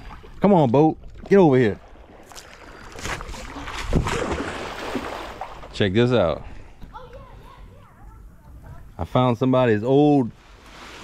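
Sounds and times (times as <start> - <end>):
water sloshing and splashing: 0.0 - 8.9, 10.3 - 11.0.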